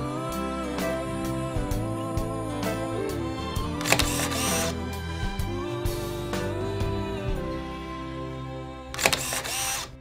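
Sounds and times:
camera shutter click: 0:03.8 - 0:04.7, 0:09.0 - 0:10.0.

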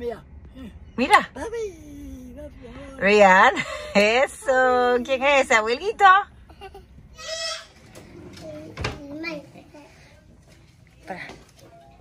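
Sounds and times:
child squealing: 0:07.2 - 0:07.7.

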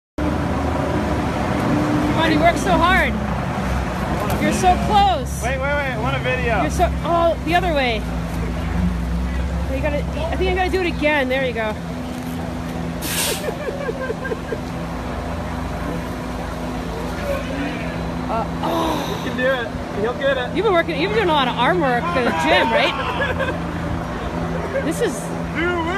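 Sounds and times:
street traffic noise: 0:00.2 - 0:25.9
trolley bus humming: 0:00.2 - 0:25.9
bus air brakes hissing: 0:13.0 - 0:13.6.

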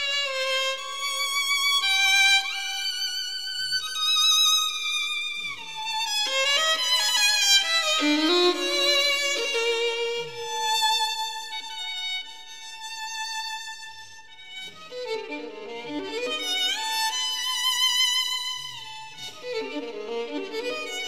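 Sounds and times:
violin playing: 0:00.0 - 0:13.9, 0:14.5 - 0:21.0.

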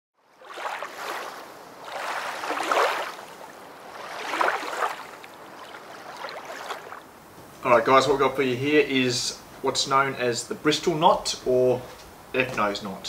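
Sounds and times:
waves washing in: 0:00.3 - 0:07.4.

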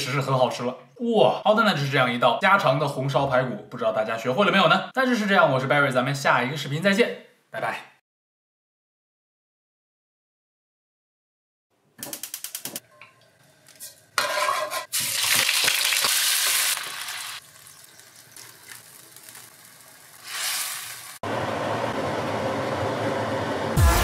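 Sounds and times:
spatula stirring: 0:13.6 - 0:15.0
meat sizzling in a wok: 0:14.0 - 0:21.2.

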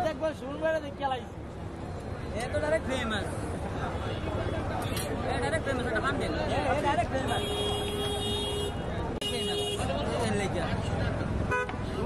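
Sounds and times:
busy street market hubbub: 0:00.0 - 0:12.0
vehicle horn honking: 0:07.3 - 0:09.9.

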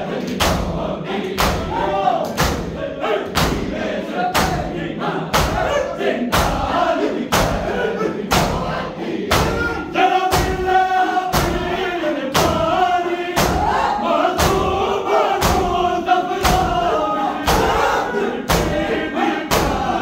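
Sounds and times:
men chanting a lament: 0:00.0 - 0:20.0
men beating their chests: 0:05.3 - 0:06.7, 0:09.3 - 0:20.0.

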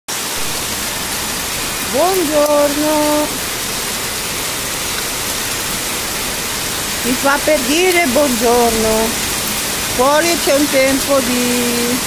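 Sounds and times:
heavy rain pouring: 0:00.1 - 0:12.0.

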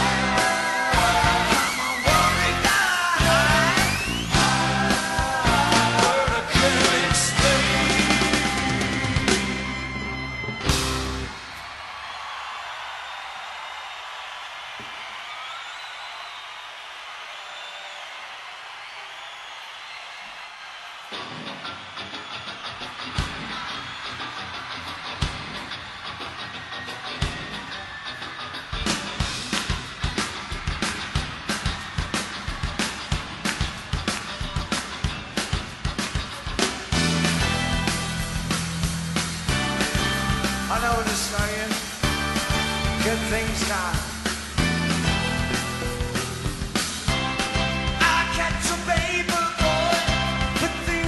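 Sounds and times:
steady drum beat: 0:00.0 - 0:09.9, 0:28.8 - 0:51.0
rock music: 0:00.0 - 0:11.6, 0:21.0 - 0:51.0.

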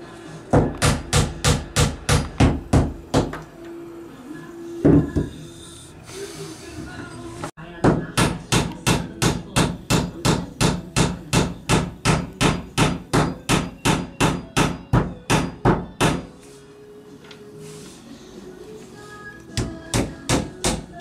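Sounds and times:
hammer striking wooden beam: 0:00.6 - 0:03.4, 0:07.8 - 0:16.3.

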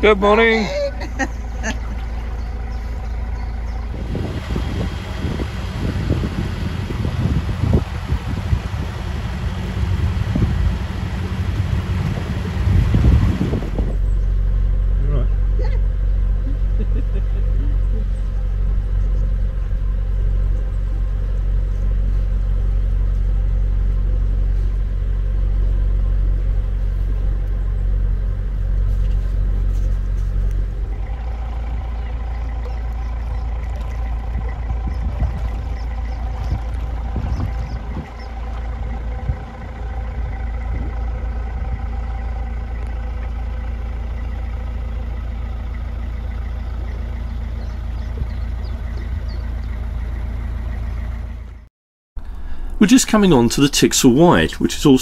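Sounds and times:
diesel engine humming: 0:00.0 - 0:55.0
rough gusty noise: 0:03.9 - 0:14.1.

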